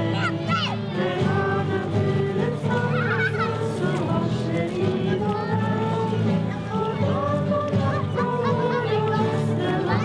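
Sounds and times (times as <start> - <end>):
group singing unaccompanied: 0.0 - 10.0.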